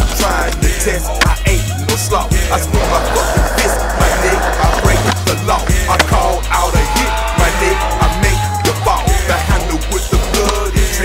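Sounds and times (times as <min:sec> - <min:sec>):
hip-hop beat: 0:00.0 - 0:11.0
skateboard rolling on rough stone: 0:02.5 - 0:06.6.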